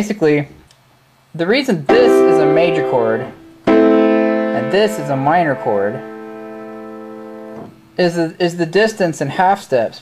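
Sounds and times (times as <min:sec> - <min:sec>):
piano chord: 0:01.9 - 0:07.8.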